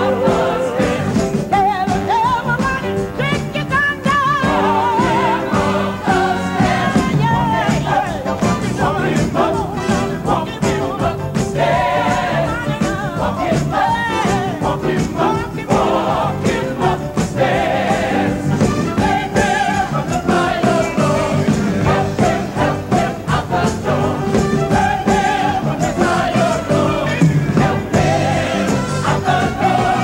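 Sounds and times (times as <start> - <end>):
choir and band: 0.0 - 30.0
sustained musical backing: 0.0 - 30.0.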